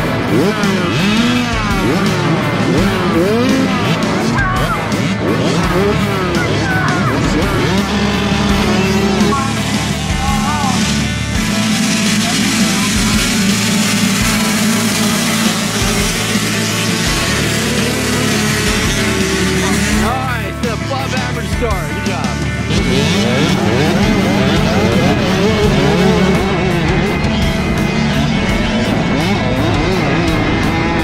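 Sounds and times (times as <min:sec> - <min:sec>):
motocross bikes revving: 0:00.0 - 0:31.0
music playing: 0:00.0 - 0:31.0.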